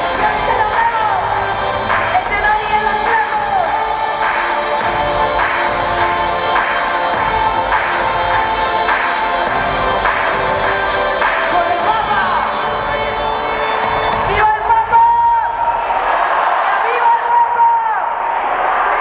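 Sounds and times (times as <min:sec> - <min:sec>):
rap music over sound system: 0:00.0 - 0:16.1
crowd: 0:00.0 - 0:19.0.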